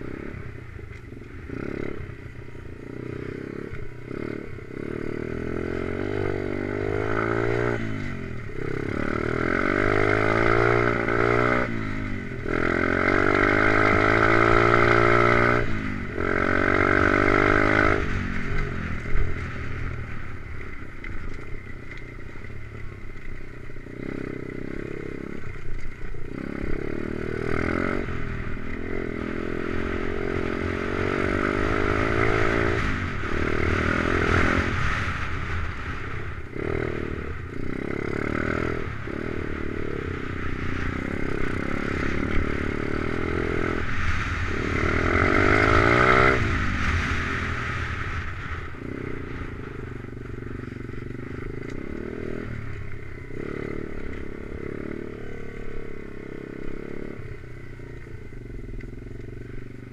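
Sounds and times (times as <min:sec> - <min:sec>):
pit bike engine revving: 0:01.1 - 0:19.4, 0:23.8 - 0:59.9.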